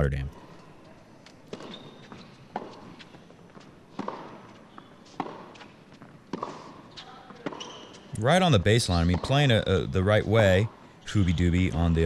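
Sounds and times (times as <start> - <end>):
faint arena background: 0.0 - 12.0
racket hitting tennis ball: 3.9 - 4.6, 5.2 - 6.8.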